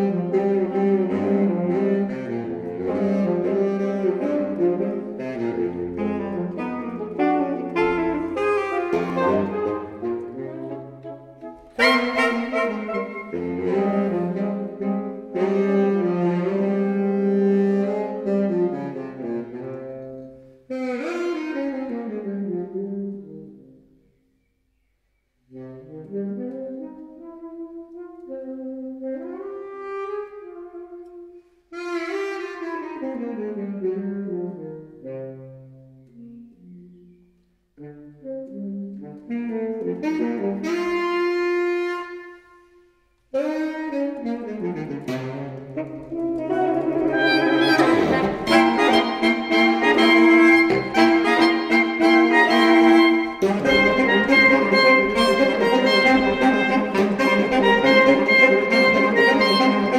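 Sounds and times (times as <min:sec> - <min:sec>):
saxophone quartet playing: 0:00.0 - 0:24.0, 0:25.5 - 0:59.9.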